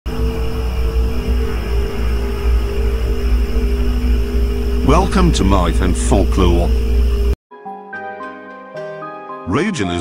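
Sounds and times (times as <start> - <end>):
dark eerie drone music: 0.1 - 7.4.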